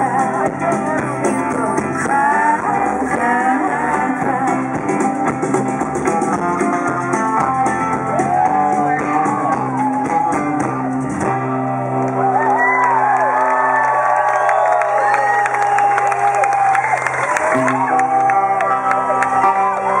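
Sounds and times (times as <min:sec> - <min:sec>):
crowd voices: 0:00.0 - 0:20.0
live band guitar chords: 0:00.0 - 0:20.0.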